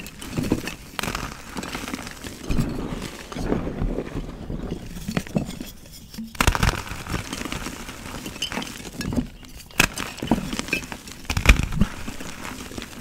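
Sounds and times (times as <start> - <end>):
chalk crunching and crumbling: 0.0 - 13.0.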